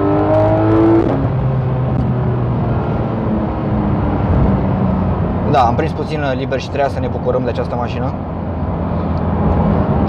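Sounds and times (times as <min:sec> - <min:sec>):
car engine running from inside cabin: 0:00.0 - 0:10.0.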